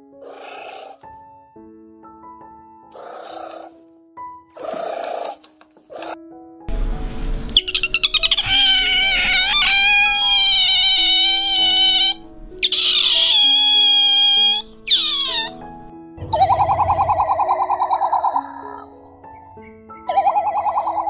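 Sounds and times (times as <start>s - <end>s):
background music with held notes: 1.0s - 21.0s
animal high-pitched wavering cries: 7.6s - 15.6s, 16.3s - 18.9s, 20.1s - 21.0s.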